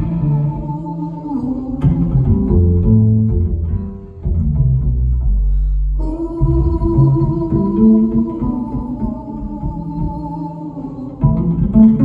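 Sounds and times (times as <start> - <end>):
double bass low notes: 0.0 - 12.0.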